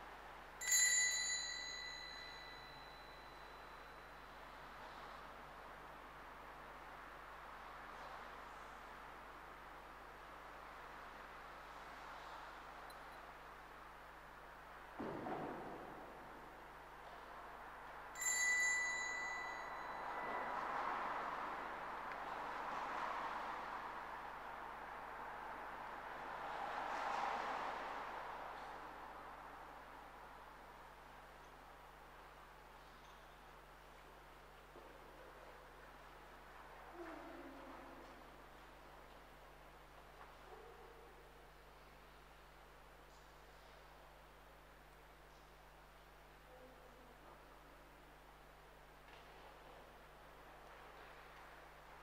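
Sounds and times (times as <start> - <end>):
small bell ringing: 0.6 - 4.4, 18.2 - 20.9.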